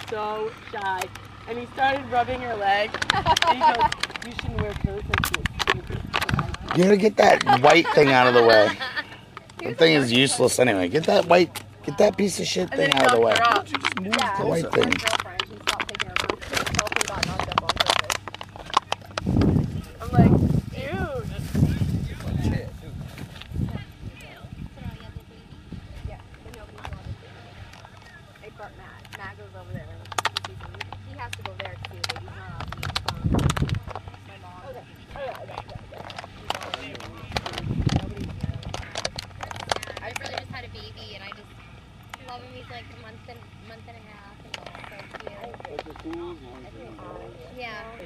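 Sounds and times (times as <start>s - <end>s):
indistinct conversation: 0.0s - 48.0s
people talking in background: 0.0s - 48.0s
steady low hum: 0.0s - 48.0s.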